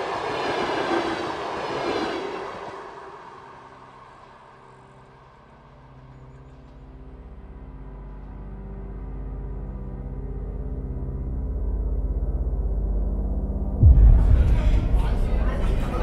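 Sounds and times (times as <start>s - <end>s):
train passing with rushing rumble: 0.0s - 5.9s, 13.8s - 16.0s
low pulsing music drone: 3.3s - 16.0s.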